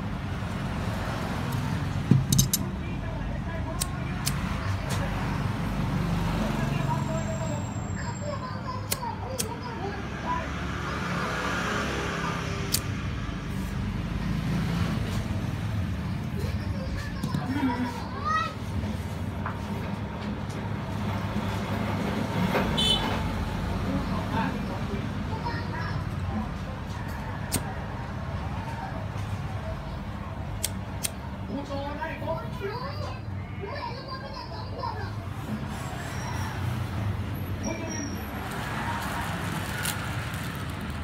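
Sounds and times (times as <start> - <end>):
low traffic rumble: 0.0 - 41.0.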